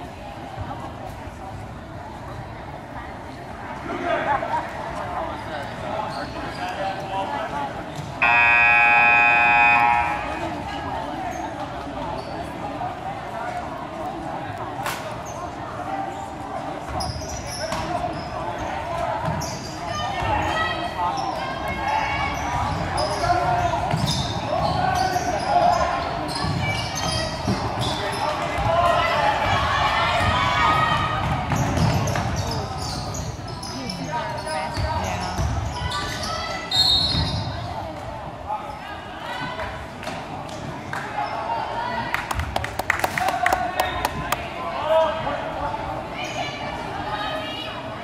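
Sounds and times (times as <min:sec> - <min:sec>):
crowd talking and calling out: 0:00.0 - 0:48.0.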